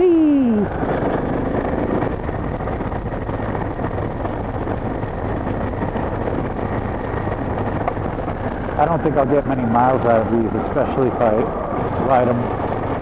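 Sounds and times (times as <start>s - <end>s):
motorcycle engine hum: 0.0s - 13.0s
road noise on gravel: 0.0s - 13.0s
wind rush on microphone: 0.0s - 13.0s.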